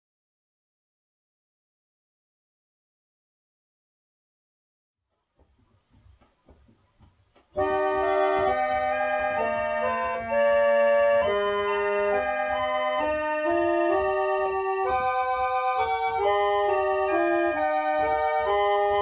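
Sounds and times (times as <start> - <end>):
faint low treadle knocks: 5.3 - 9.1
reed organ playing hymn chords: 7.5 - 19.0.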